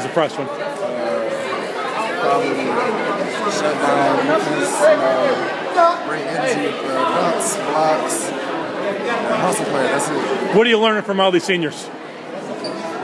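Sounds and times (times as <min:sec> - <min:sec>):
crowd chatter in a hall: 0:00.0 - 0:13.0.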